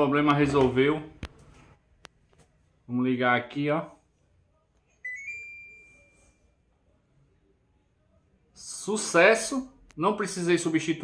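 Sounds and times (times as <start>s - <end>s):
two-note electronic chime: 5.0s - 6.5s.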